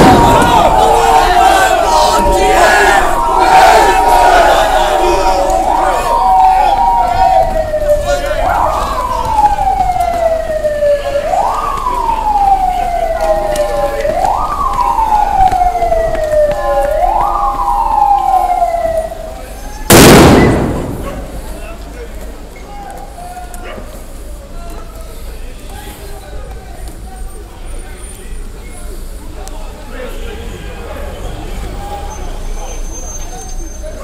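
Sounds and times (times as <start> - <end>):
police siren wailing: 0.0 - 21.8
street crowd noise: 0.0 - 34.0.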